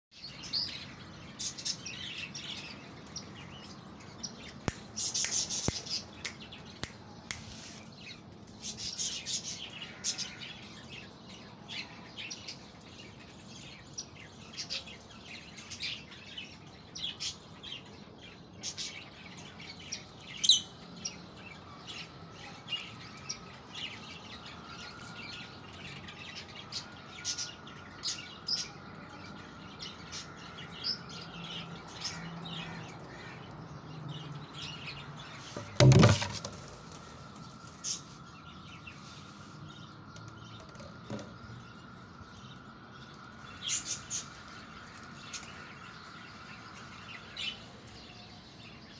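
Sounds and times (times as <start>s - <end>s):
birds chirping: 0.1s - 48.9s.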